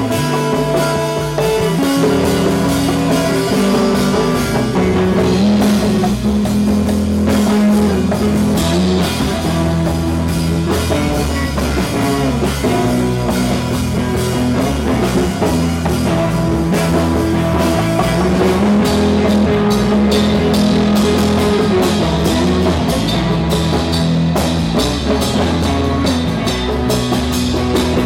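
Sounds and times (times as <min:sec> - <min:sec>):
drum kit: 0:00.0 - 0:28.0
electric guitar: 0:00.0 - 0:28.0.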